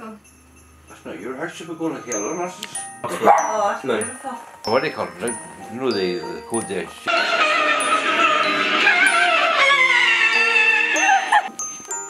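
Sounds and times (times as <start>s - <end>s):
backing music: 0.8s - 12.0s.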